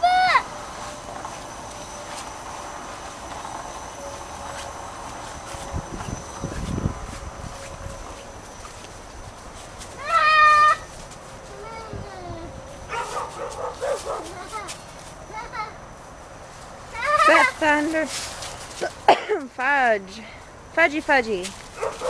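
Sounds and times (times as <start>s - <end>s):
toddler squealing and shouting: 0.0s - 0.5s, 10.0s - 10.9s, 17.0s - 17.5s
faint rustling: 0.7s - 20.6s.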